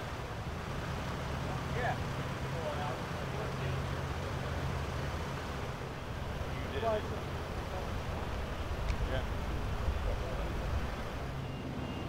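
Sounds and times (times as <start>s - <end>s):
vehicle engines idling: 0.0s - 12.0s.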